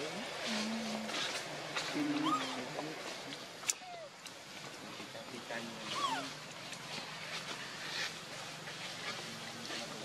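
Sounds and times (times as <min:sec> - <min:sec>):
macaque call: 0:02.0 - 0:02.7, 0:03.7 - 0:04.2, 0:05.8 - 0:06.5.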